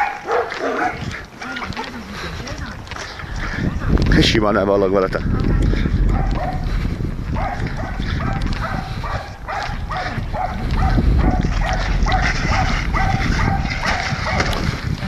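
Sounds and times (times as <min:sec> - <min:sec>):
dog barking: 0:00.0 - 0:01.0, 0:06.1 - 0:06.7, 0:07.4 - 0:14.6.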